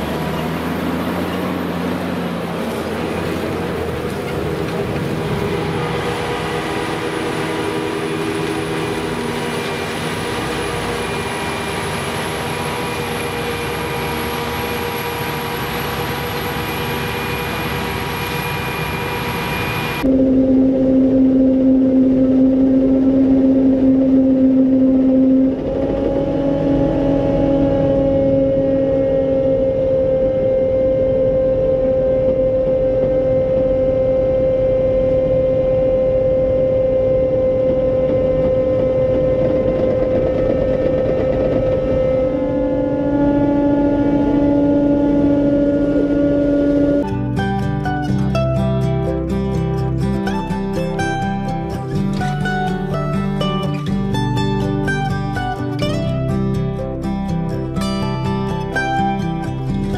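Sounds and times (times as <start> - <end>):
droning machine hum: 0.0 - 59.9
harvesting machinery running: 0.0 - 59.9.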